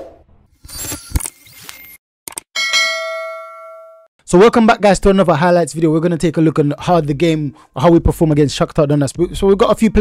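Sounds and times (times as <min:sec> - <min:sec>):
bright metallic ding: 0:02.6 - 0:04.1.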